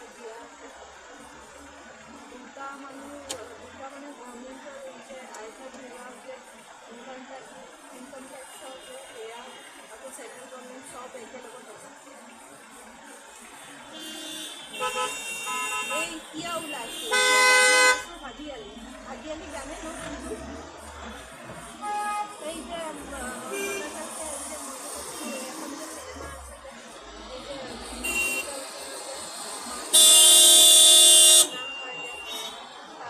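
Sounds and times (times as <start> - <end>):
street traffic: 0.0 - 33.0
vehicle horns honking: 13.8 - 18.8, 21.7 - 22.7, 23.3 - 24.2, 28.0 - 28.8, 29.8 - 32.8.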